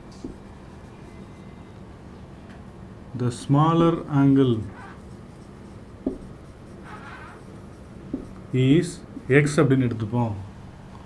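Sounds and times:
marker writing on whiteboard: 0:00.0 - 0:01.6, 0:03.9 - 0:10.0.

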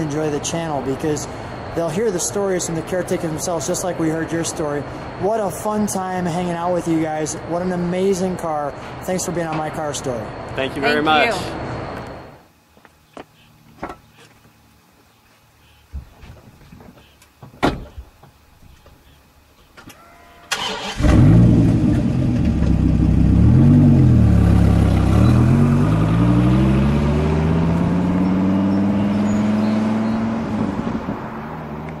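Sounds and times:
car engine starting and revving: 0:20.5 - 0:32.0.

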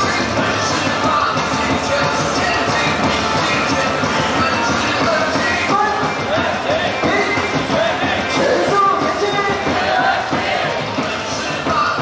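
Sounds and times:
cheer song over loudspeakers: 0:00.0 - 0:12.0
crowd chanting and singing: 0:00.0 - 0:12.0.

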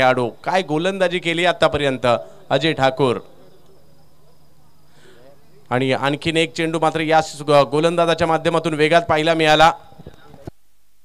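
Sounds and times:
man speaking: 0:00.0 - 0:04.4, 0:05.0 - 0:10.5
low hum: 0:00.0 - 0:10.5
faint background buzz: 0:00.0 - 0:11.0.

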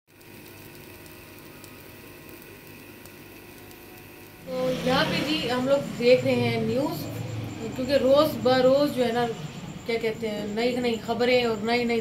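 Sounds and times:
soft ticks: 0:00.1 - 0:04.4
faint steady sizzle: 0:00.1 - 0:12.0.

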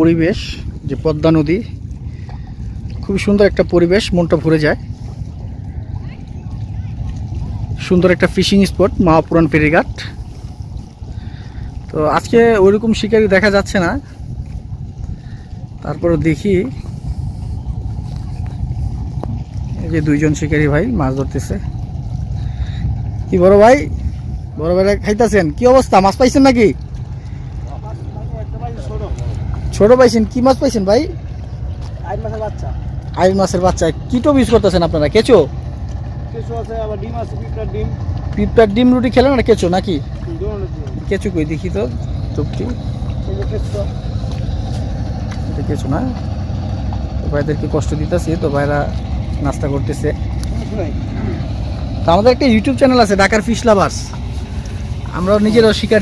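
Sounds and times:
people talking: 0:00.0 - 0:01.7, 0:03.0 - 0:04.8, 0:06.0 - 0:10.2, 0:11.9 - 0:14.0, 0:15.8 - 0:16.8, 0:19.8 - 0:21.6, 0:23.3 - 0:23.9, 0:24.6 - 0:26.8, 0:27.6 - 0:31.2, 0:32.0 - 0:35.5, 0:36.3 - 0:44.0, 0:45.4 - 0:46.3, 0:47.2 - 0:54.2, 0:55.0 - 0:56.0
steady low rumble: 0:00.0 - 0:56.0
person speaking: 0:47.2 - 0:56.0.

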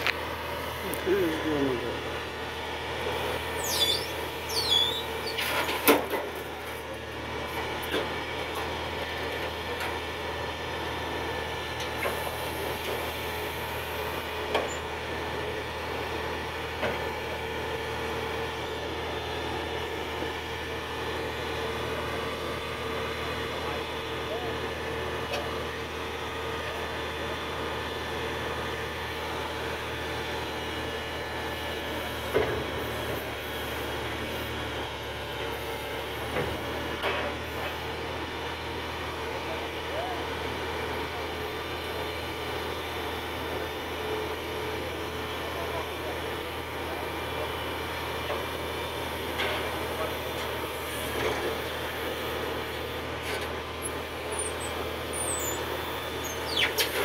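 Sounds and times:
truck engine running: 0:00.0 - 0:57.0.

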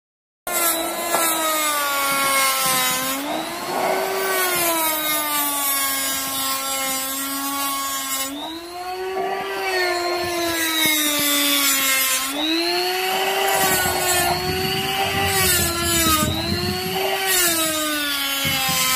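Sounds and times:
die grinder grinding metal: 0:00.5 - 0:18.9.

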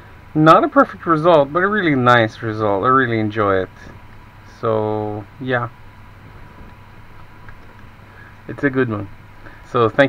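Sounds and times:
low room hum and hiss: 0:00.0 - 0:10.0.

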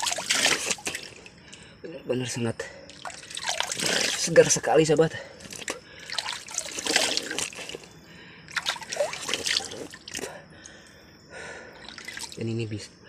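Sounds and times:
water splashing on face: 0:00.0 - 0:01.3, 0:02.9 - 0:04.4, 0:05.4 - 0:07.9, 0:08.5 - 0:10.3, 0:11.8 - 0:12.4.

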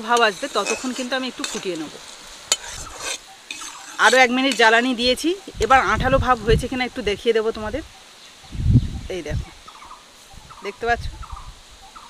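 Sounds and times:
spoon scraping metal wok: 0:00.0 - 0:06.4
syrup boiling and hissing: 0:00.0 - 0:07.4.

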